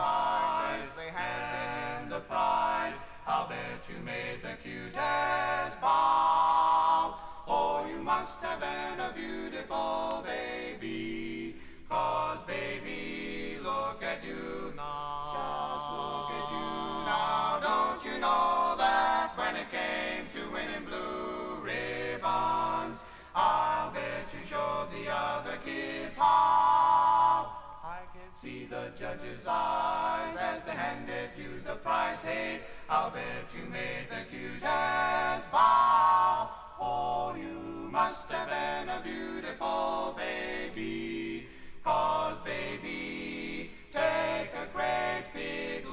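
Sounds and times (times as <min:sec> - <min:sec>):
male quartet singing a cappella: 0:00.0 - 0:45.9.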